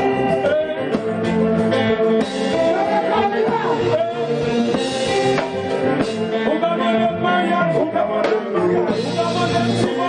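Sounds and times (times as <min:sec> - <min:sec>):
man singing into a microphone: 0:00.0 - 0:04.7, 0:06.2 - 0:10.0
live band music with keyboards: 0:00.0 - 0:10.0.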